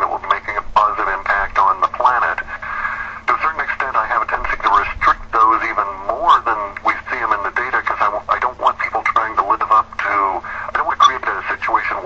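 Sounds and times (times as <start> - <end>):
person talking on radio: 0.0 - 12.0.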